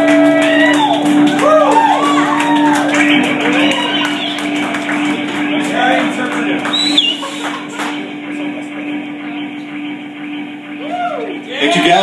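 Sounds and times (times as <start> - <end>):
live rock band: 0.0 - 8.3
gliding rising and falling tones: 0.0 - 12.0
held steady note: 0.0 - 12.0.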